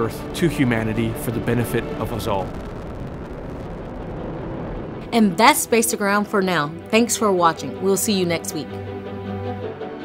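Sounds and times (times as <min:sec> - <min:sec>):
distant rocket engine rumble: 0:00.0 - 0:06.8.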